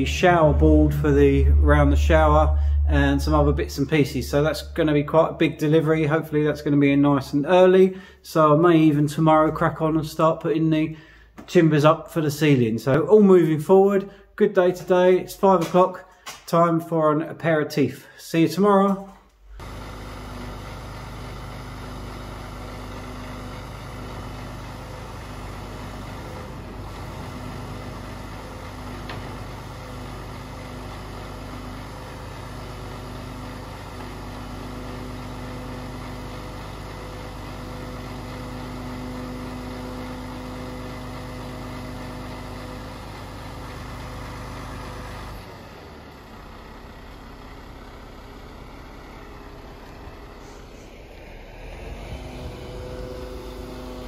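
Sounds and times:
hydraulic crane hum: 0:00.0 - 0:05.8, 0:19.4 - 0:54.0
diesel lorry engine running: 0:00.0 - 0:07.2, 0:19.4 - 0:54.0.

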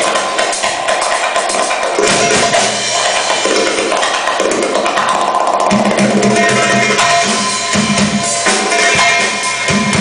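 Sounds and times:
fast low beat: 0:00.0 - 0:10.0
live band playing belly-dance music: 0:00.0 - 0:10.0.

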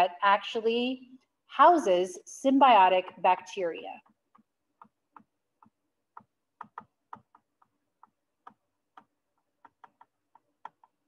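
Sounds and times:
stylus tapping on surface: 0:04.0 - 0:11.0.

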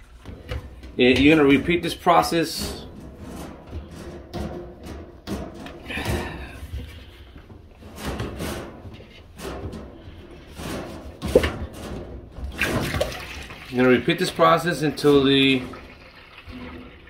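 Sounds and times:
rubber hose knocking and scraping: 0:00.0 - 0:17.0.

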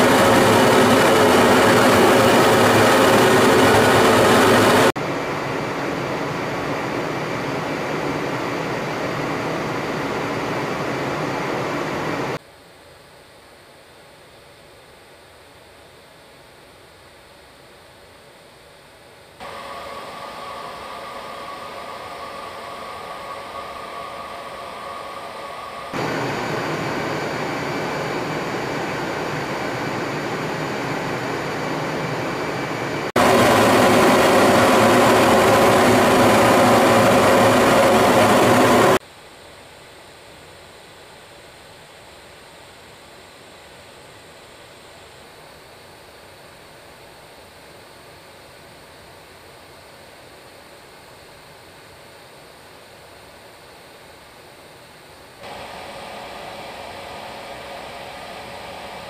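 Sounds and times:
jet engine in flight: 0:00.0 - 0:12.4, 0:13.0 - 0:39.1, 0:40.8 - 0:59.0
steady tones: 0:19.4 - 0:30.4, 0:55.4 - 0:59.0.

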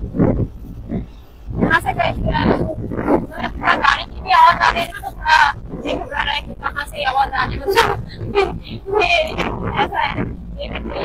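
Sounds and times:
motorcycle noise: 0:00.0 - 0:11.0
wind rumble: 0:00.0 - 0:11.0
person talking or calling out: 0:01.5 - 0:11.0.

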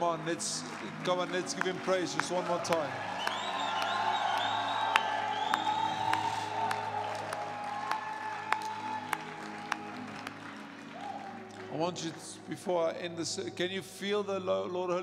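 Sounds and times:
congregation applauding and cheering: 0:00.0 - 0:13.0
high whoops: 0:02.7 - 0:11.4.

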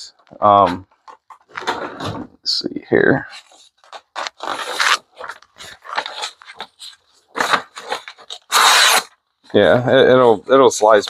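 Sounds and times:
paper rustling: 0:03.3 - 0:09.0.

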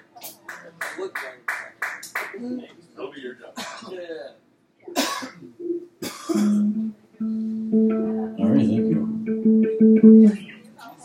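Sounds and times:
voices in a bar room: 0:00.0 - 0:11.0
person coughing: 0:04.9 - 0:06.7
low electric guitar note: 0:06.5 - 0:10.4.

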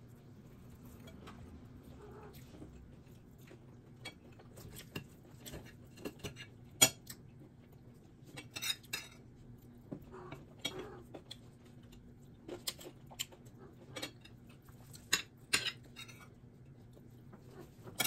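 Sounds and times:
faint low hum: 0:00.0 - 0:18.0.

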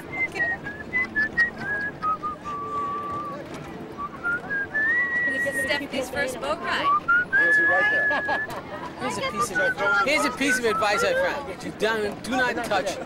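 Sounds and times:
person whistling a tune: 0:00.1 - 0:03.4, 0:04.0 - 0:05.7, 0:06.8 - 0:08.5.

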